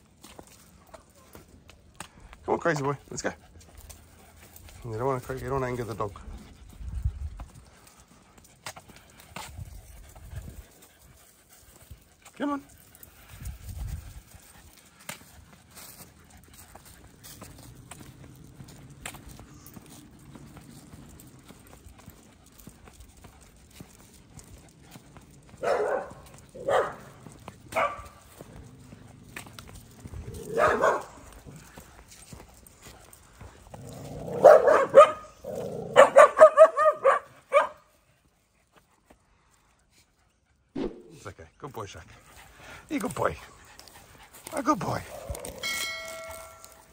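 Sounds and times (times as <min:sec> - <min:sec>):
dog barking: 0:25.6 - 0:27.1, 0:27.7 - 0:28.2, 0:30.4 - 0:31.2, 0:34.3 - 0:37.9.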